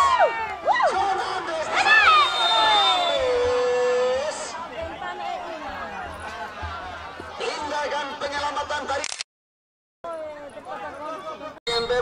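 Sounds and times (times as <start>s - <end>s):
spectators shouting and yelling: 0.0s - 9.0s
crowd chatter: 0.0s - 9.1s, 10.1s - 12.0s.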